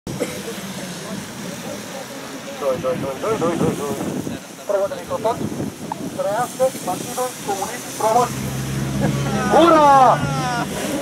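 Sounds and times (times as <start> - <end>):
voices talking: 0.1 - 11.0
car engine running: 7.5 - 11.0.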